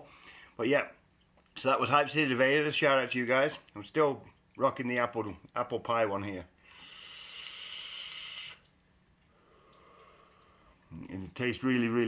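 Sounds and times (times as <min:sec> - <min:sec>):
soft exhale: 0:06.6 - 0:08.7, 0:09.3 - 0:10.8
vape hissing: 0:06.7 - 0:08.6.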